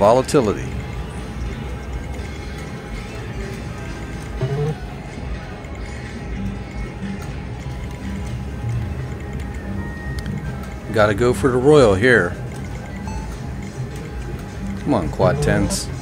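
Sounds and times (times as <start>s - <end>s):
background music: 0.0s - 16.0s
video poker electronic sounds: 4.3s - 4.8s, 10.2s - 16.0s
machine noise: 4.3s - 4.9s.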